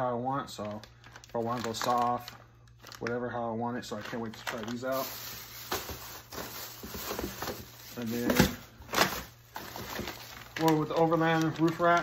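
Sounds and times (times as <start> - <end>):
plastic bags rustling and crinkling: 0.5 - 12.0.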